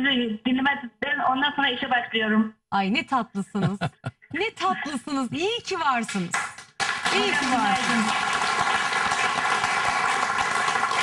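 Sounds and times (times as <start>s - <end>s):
audience applauding: 6.1s - 11.0s.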